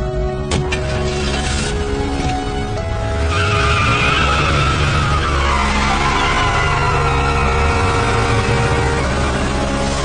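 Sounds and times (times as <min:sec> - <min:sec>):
background music: 0:00.0 - 0:10.0
tyres squealing: 0:03.2 - 0:09.8.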